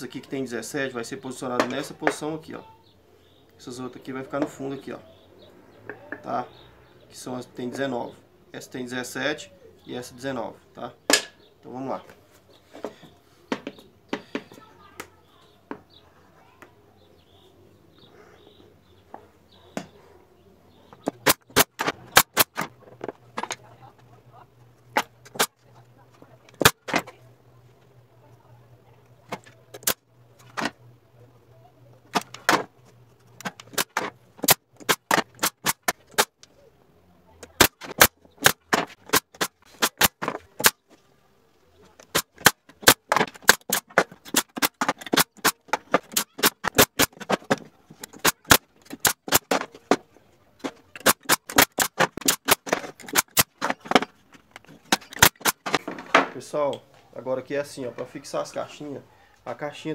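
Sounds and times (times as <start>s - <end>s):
pneumatic nail gun firing: 21.0s - 22.7s, 25.2s - 25.5s, 26.6s - 27.0s, 29.4s - 30.7s, 33.4s - 36.4s, 37.5s - 40.8s, 42.0s - 49.7s, 51.0s - 54.1s, 54.9s - 55.8s.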